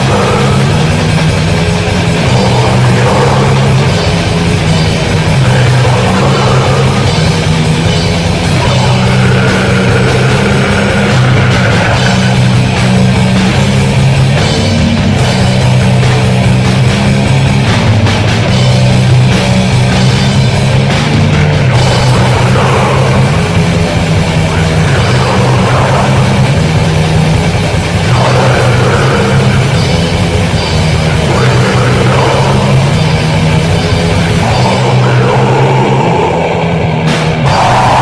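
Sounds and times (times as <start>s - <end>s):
distorted guitars and bass: 0.0s - 38.0s
drums: 0.0s - 38.0s
heavy metal music: 0.0s - 38.0s.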